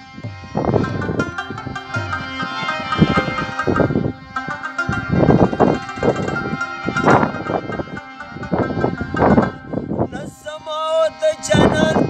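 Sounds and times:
harmonium chords: 0.0s - 12.0s
plucked string instrument: 0.0s - 12.0s
drum beat: 0.7s - 6.4s.

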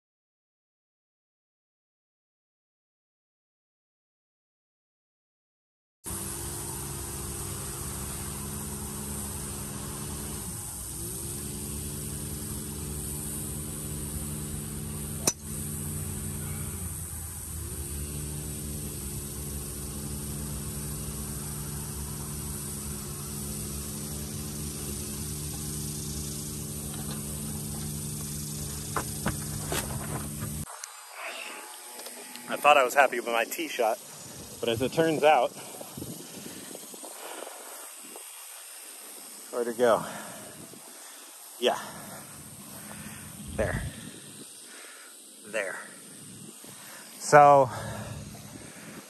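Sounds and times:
low engine-like hum: 6.1s - 30.7s
golf club striking ball: 15.1s - 16.2s.

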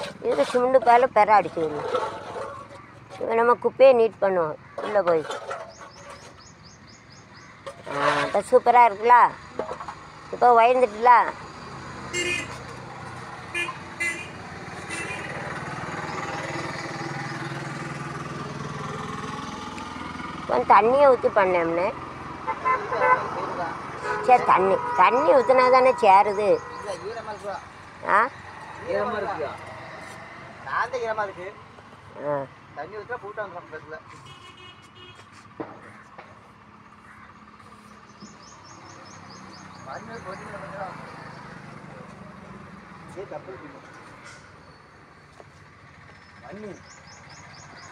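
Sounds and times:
passing vehicle engine drone: 9.3s - 32.8s, 36.4s - 44.5s.

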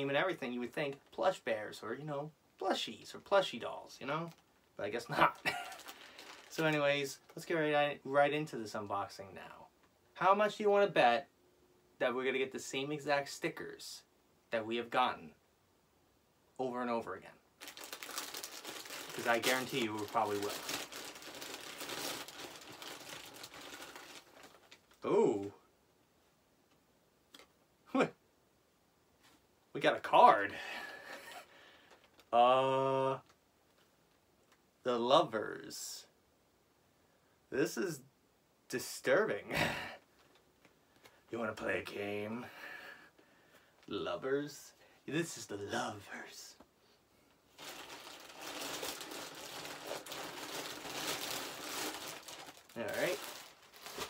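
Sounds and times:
packaging crinkling: 5.2s - 7.4s, 17.6s - 25.0s, 47.5s - 54.0s.

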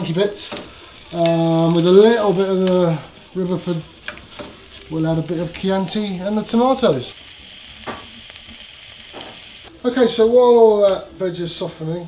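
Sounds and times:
vegetables sizzling in a pot: 0.0s - 11.9s.

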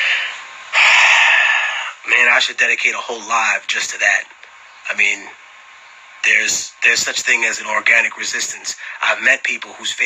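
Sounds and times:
man breathing: 0.0s - 2.0s, 8.8s - 9.0s.

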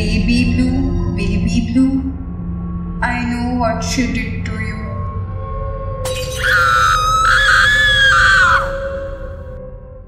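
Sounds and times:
low dark music drone: 0.0s - 10.0s
high wavering scream: 6.1s - 9.5s.

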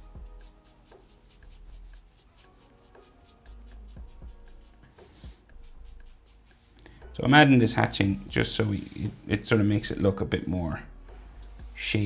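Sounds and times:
marker pen scratching on paper: 0.0s - 6.8s.

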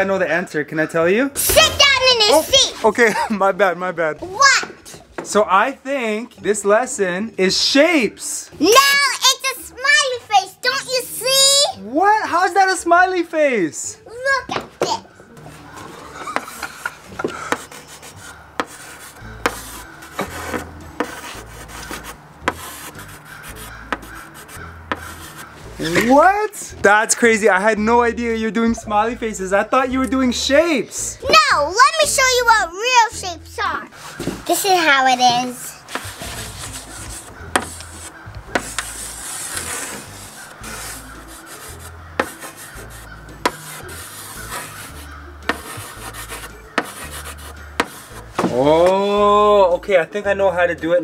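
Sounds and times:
chalk scraping on blackboard: 15.4s - 26.1s, 35.9s - 48.5s
chalk tapping on board: 16.3s - 25.5s, 35.9s - 48.5s.

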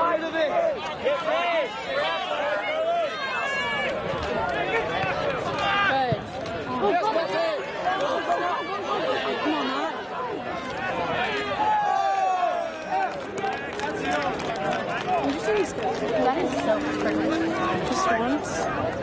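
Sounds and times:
spectators chattering: 0.0s - 19.0s.

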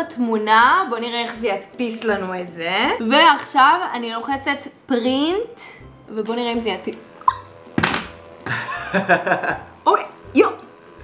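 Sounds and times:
paper-feed motor whirring: 6.2s - 11.0s
printer knock: 7.8s - 8.2s
people laughing: 8.5s - 9.7s.

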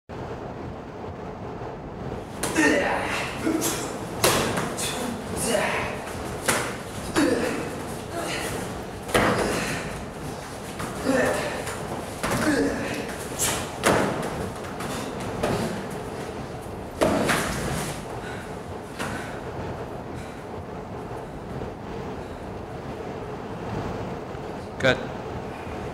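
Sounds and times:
steady background hiss: 0.1s - 25.9s
steady background noise: 0.1s - 25.9s.

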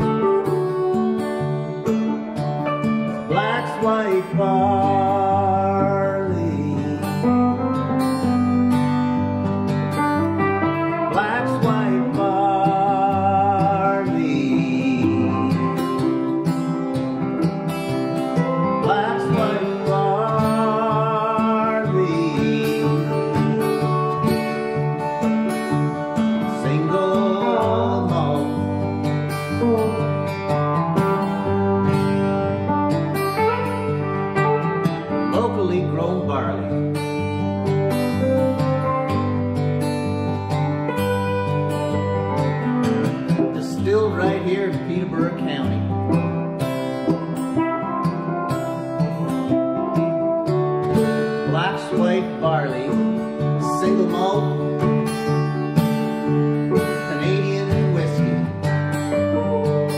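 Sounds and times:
electric guitar lead line: 0.0s - 59.9s
strummed acoustic guitar: 0.0s - 59.9s.

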